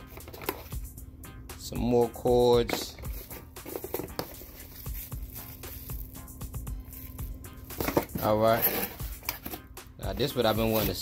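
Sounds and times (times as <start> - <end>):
background music: 0.0 - 11.0
bubble wrap crinkling: 3.9 - 7.4.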